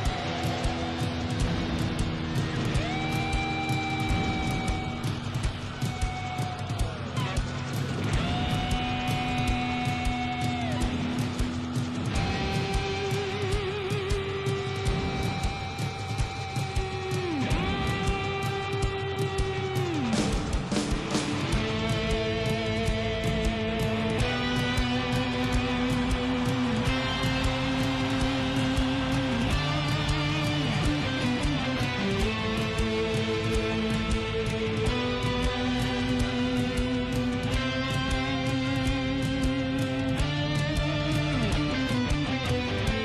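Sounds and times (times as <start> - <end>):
live rock music: 0.0 - 43.0.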